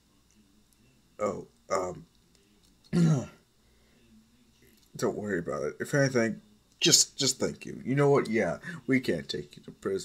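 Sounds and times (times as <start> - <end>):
person clearing throat: 2.9 - 3.4.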